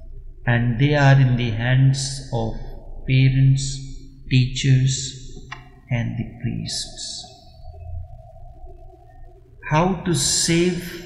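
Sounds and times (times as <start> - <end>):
faint low hum: 0.0 - 11.0
sustained synthesizer note: 0.0 - 11.0.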